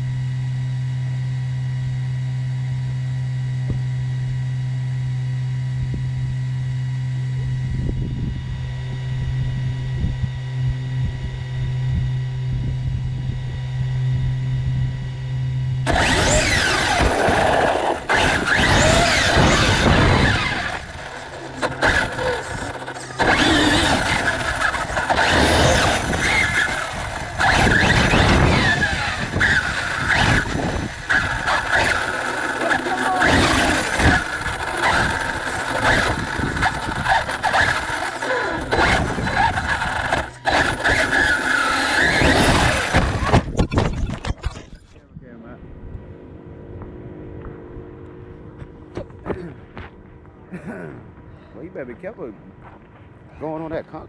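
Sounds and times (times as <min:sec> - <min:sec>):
electric motor whine: 0:00.0 - 0:44.5
drivetrain and tyre noise: 0:15.8 - 0:44.6.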